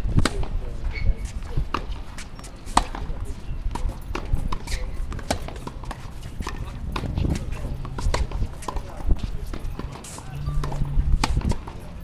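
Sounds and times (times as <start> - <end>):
tennis racquet strikes: 0.2 - 0.6, 1.2 - 11.9
tennis ball bounces: 1.2 - 12.0.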